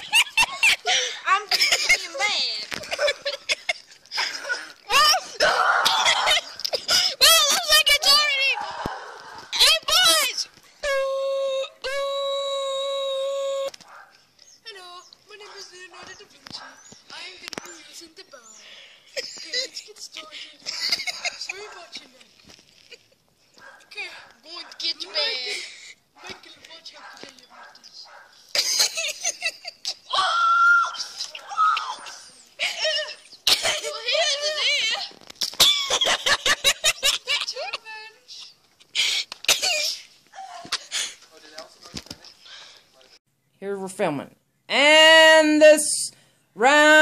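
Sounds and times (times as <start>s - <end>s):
child shouting: 4.9s - 13.7s, 30.1s - 35.1s.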